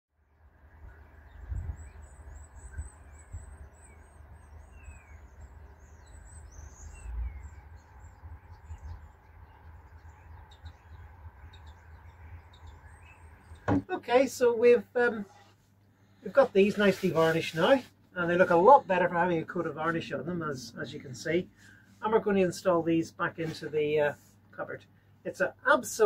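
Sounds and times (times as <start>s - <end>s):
steady low rumble: 0.5s - 13.7s
small birds chirping: 0.7s - 26.0s.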